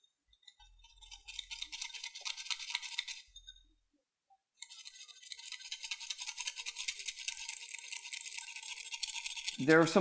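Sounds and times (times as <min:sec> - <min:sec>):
whisk frothing in ceramic bowl: 0:00.0 - 0:03.6, 0:04.6 - 0:10.0.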